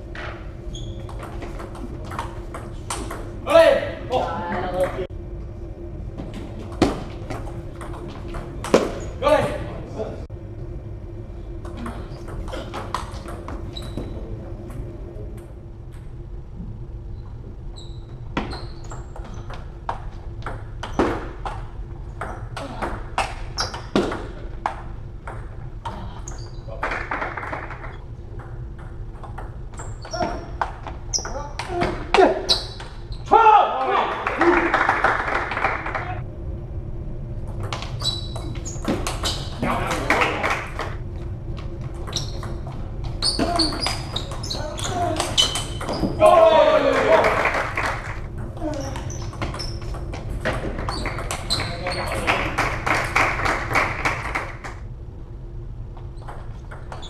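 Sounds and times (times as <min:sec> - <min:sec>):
loud voices: 0:46.0 - 0:49.0.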